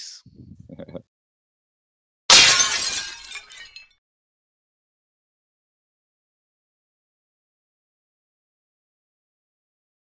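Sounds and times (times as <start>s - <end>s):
glass shattering: 2.3s - 4.0s.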